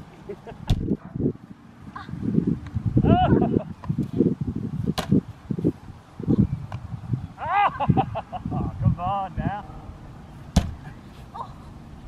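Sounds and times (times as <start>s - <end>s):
baseball smacking rebounder net: 4.9s - 5.2s, 10.5s - 10.9s.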